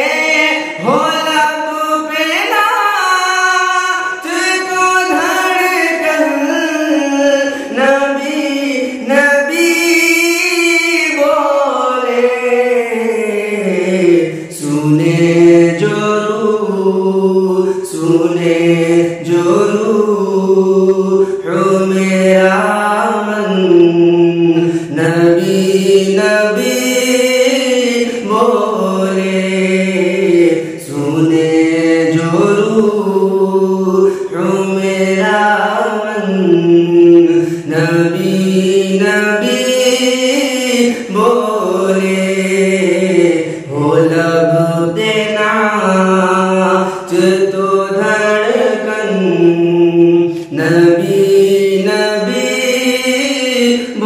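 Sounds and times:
man singing devotional song: 0.0 - 54.0.

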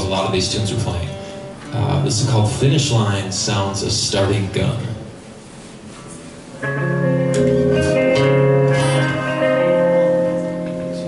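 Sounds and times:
guitars strumming chords: 0.0 - 3.0, 6.5 - 11.0.

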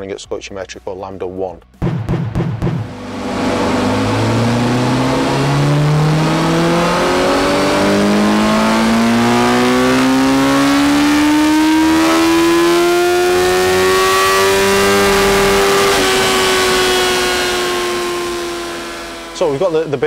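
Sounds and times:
motorcycle engine revs climbing: 2.0 - 20.0.

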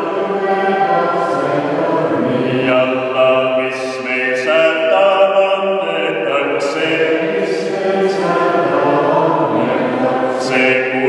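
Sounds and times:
unaccompanied hymn singing: 0.0 - 11.0.

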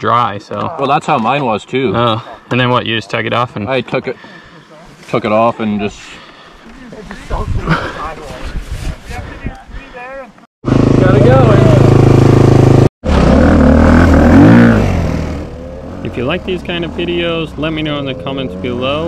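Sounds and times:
dirt bike engine running: 10.6 - 17.0.

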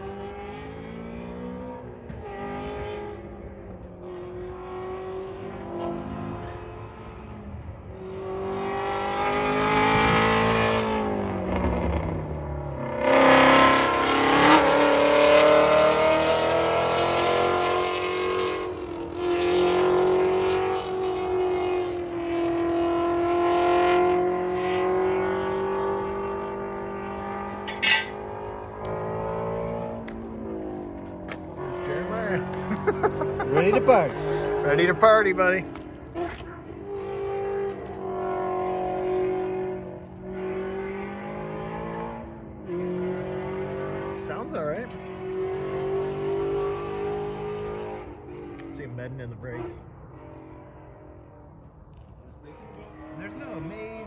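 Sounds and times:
race car engines accelerating: 0.0 - 54.0.

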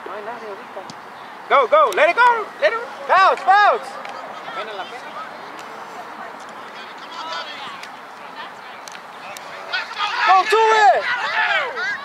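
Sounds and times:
distant shouts and calls: 0.0 - 12.0
outdoor background noise: 0.0 - 12.0.

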